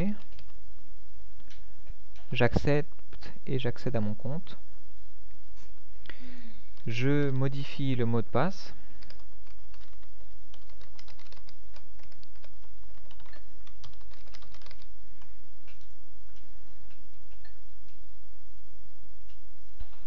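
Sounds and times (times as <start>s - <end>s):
keyboard typing: 0.0s - 0.6s, 9.0s - 18.0s
steady low hum: 0.0s - 20.0s.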